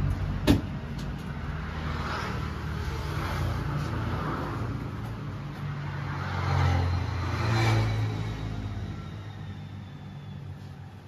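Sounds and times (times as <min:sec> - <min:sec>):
passing motor vehicle rumble: 0:00.0 - 0:11.0.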